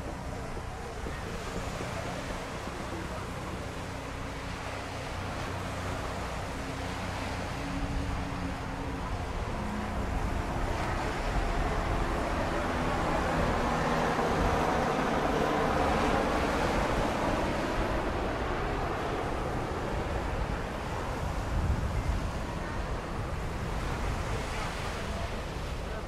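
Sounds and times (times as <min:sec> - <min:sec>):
surf: 0:00.0 - 0:26.0
wind rumbling on microphone: 0:00.0 - 0:26.0.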